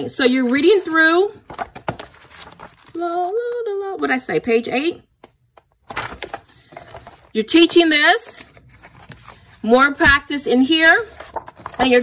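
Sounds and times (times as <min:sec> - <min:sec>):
book pages flipping: 0:00.0 - 0:03.6, 0:05.2 - 0:07.4, 0:08.3 - 0:12.0
paper rustling and crinkling: 0:00.0 - 0:03.6, 0:05.8 - 0:12.0.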